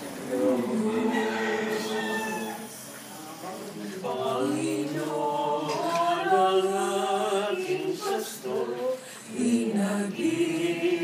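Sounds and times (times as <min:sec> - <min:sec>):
group singing a chant: 0:00.0 - 0:02.9, 0:03.8 - 0:11.0
low murmur of voices: 0:00.0 - 0:11.0.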